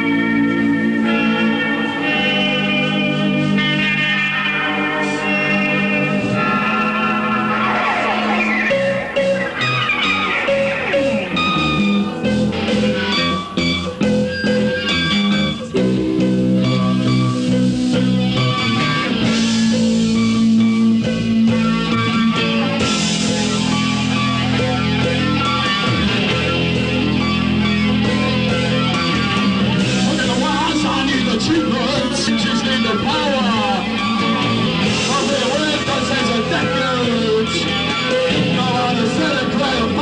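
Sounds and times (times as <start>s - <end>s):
bass guitar: 0.0s - 40.0s
drums: 0.0s - 40.0s
electric guitars: 0.0s - 40.0s.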